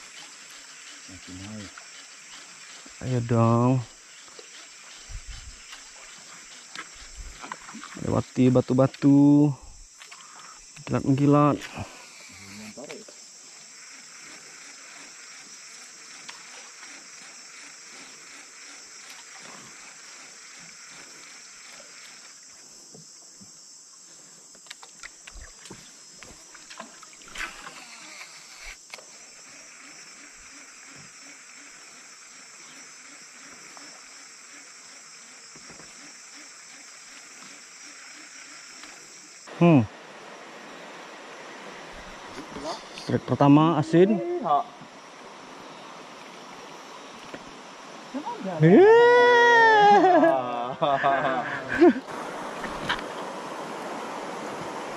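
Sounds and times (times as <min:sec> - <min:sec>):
rainforest insects droning: 0:00.0 - 0:54.9.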